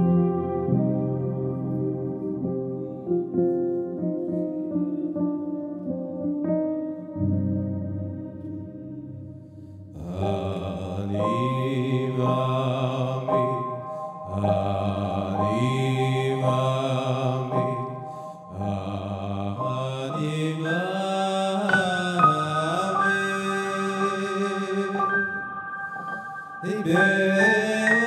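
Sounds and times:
electronic keyboard chords: 0.0s - 18.7s, 20.2s - 28.0s
man singing into microphone: 10.0s - 25.4s, 26.1s - 28.0s.

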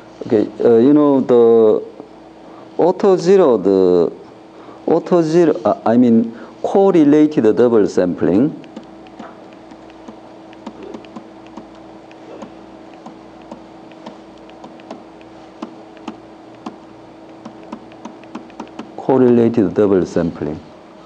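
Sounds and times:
steady hum: 0.0s - 21.0s
stylus tapping on tablet: 8.6s - 19.0s.

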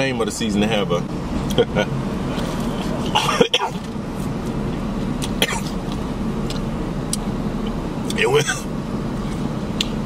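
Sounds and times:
man coughing: 3.1s - 3.8s, 5.4s - 5.8s, 8.3s - 8.7s.

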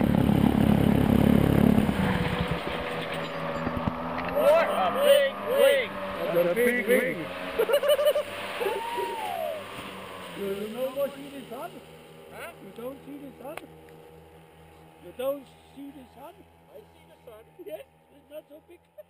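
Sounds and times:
paramotor engine droning: 0.0s - 19.0s
people talking: 4.3s - 8.0s, 10.4s - 13.7s, 15.0s - 19.0s.

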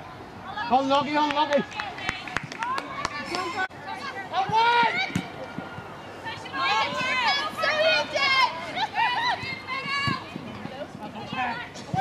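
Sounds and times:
women shouting: 6.3s - 10.3s.

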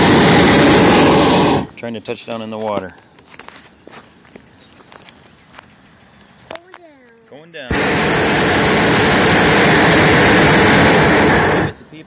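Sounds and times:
faint clicks and ticks: 4.3s - 7.4s.

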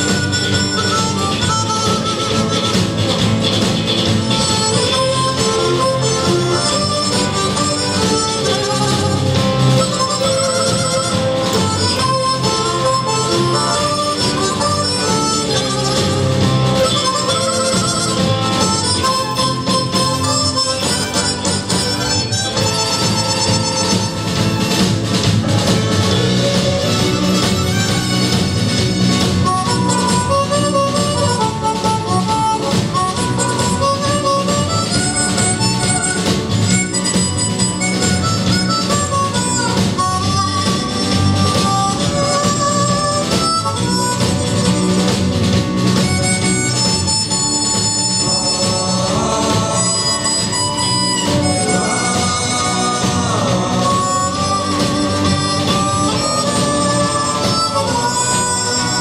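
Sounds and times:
harmonica melody: 0.0s - 59.0s
live band playing: 0.0s - 59.0s.

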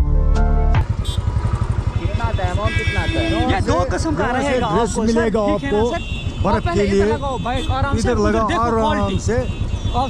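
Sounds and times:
motorcycle engine idling: 0.8s - 10.0s.

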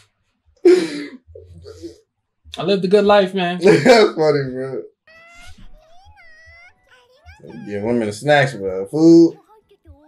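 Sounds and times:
girl speaking sing-song: 5.8s - 7.8s.

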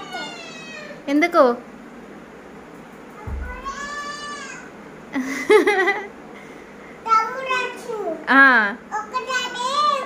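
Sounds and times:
soft low thump: 3.2s - 3.9s.

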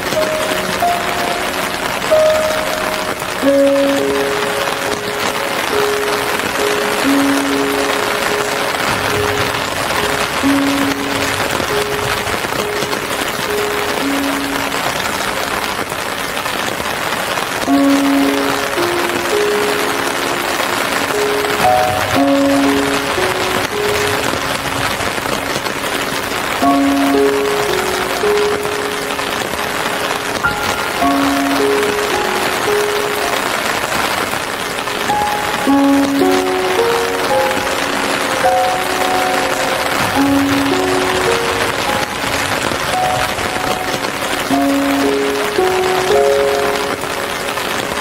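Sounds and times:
slow soft instrumental music: 0.0s - 48.0s
steady rain hiss: 0.0s - 48.0s.

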